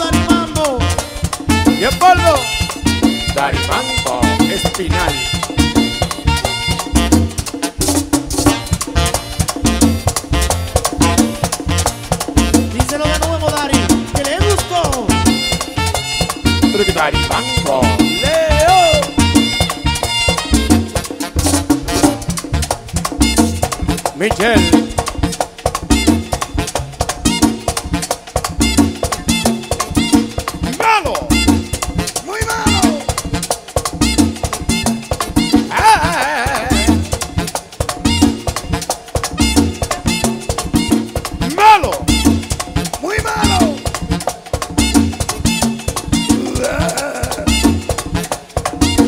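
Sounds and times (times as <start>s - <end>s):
accordion: 0.0s - 49.0s
bass: 0.0s - 49.0s
latin dance band playing: 0.0s - 49.0s
percussion beat: 0.0s - 49.0s.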